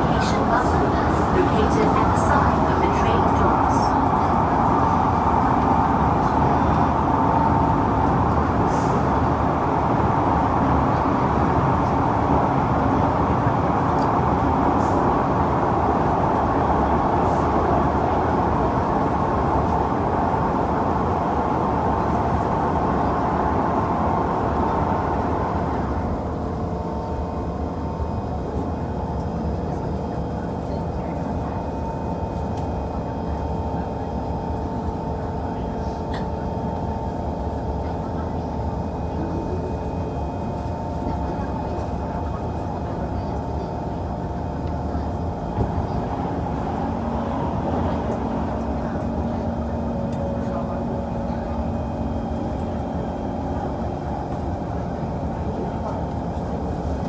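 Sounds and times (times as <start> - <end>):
train drive whine: 0.0 - 57.0
train wheels rumbling on rail: 0.0 - 57.0.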